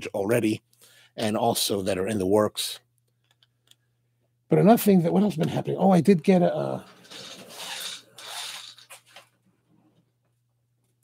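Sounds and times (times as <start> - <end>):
office chair rubbing and rustling: 6.9 - 10.0.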